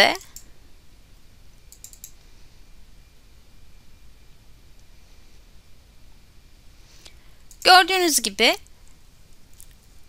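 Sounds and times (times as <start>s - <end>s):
computer mouse clicks: 1.7s - 2.2s.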